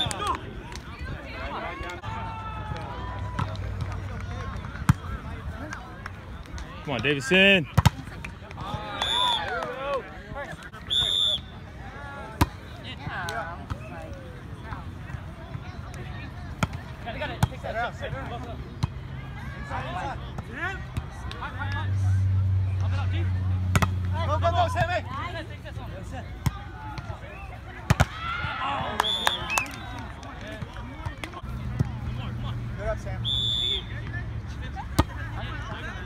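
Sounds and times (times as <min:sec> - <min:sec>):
players shouting: 0:00.0 - 0:36.0
volleyball slaps: 0:07.7 - 0:10.0, 0:23.7 - 0:24.1, 0:27.8 - 0:32.0.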